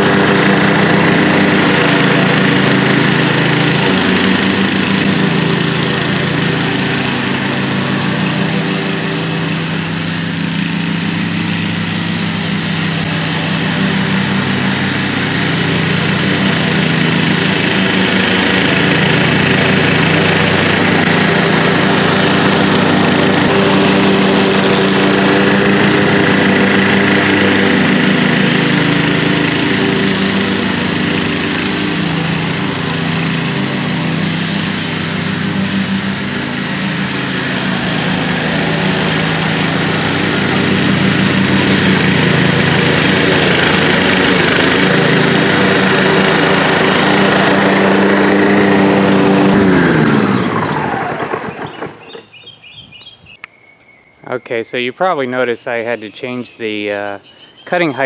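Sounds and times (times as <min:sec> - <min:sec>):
lawn mower engine cutting grass: 0:00.0 - 0:53.5, 0:54.3 - 0:58.0.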